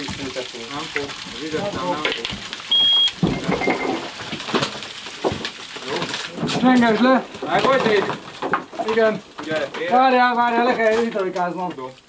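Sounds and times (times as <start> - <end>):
men talking indistinctly: 0.0 - 2.4, 5.8 - 8.2, 8.8 - 12.0
steady hiss: 0.0 - 8.2
high electronic beep: 2.7 - 4.0.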